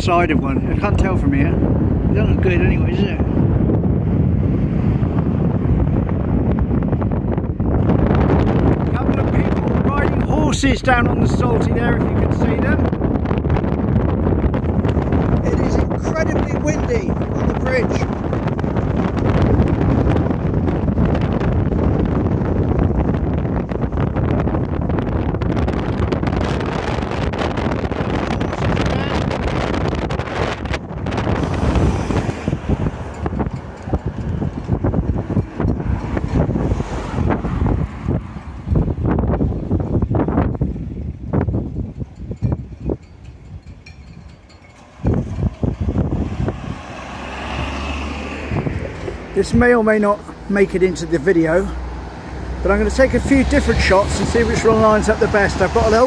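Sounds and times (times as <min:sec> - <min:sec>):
passing car traffic: 0:00.0 - 0:56.0
wind buffeting microphone: 0:00.0 - 0:56.0.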